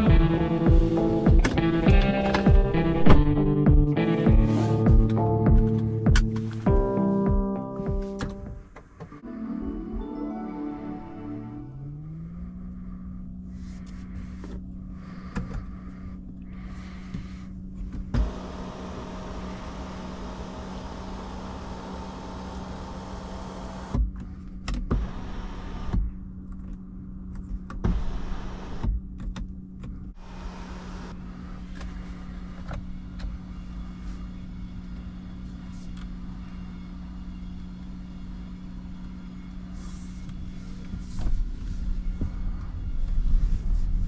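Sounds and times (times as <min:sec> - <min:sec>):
sunroof electric motor humming: 0:18.2 - 0:23.9.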